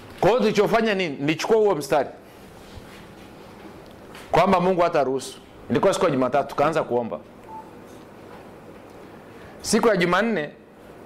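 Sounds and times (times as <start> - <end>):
faint electronic beep: 7.4 - 7.8.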